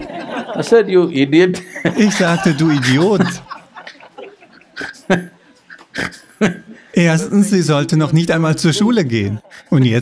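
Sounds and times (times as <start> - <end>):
man chuckling: 1.6 - 6.8.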